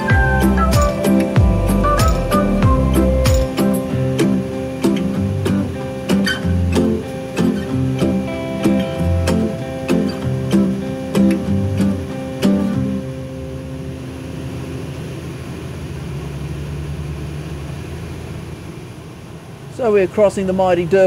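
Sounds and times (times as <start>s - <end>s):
strummed acoustic guitar: 0.0s - 15.6s
bus interior hum: 0.0s - 21.0s.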